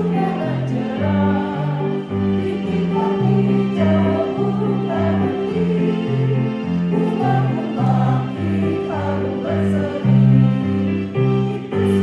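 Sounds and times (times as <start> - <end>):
choir singing a hymn: 0.0 - 12.0
instrumental accompaniment: 0.0 - 12.0.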